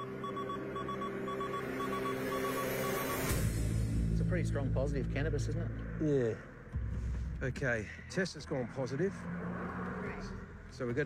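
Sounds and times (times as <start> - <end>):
short high beeps: 0.0 - 3.4.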